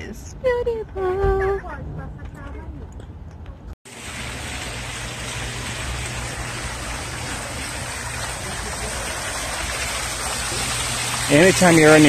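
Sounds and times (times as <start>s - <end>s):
fountain water splashing into basin: 3.9s - 12.0s.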